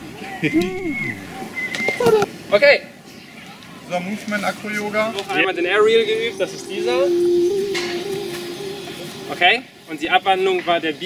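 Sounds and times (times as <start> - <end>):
person holding long note: 0.6 - 1.4, 5.5 - 9.8
person speaking: 0.6 - 1.4, 5.4 - 9.6.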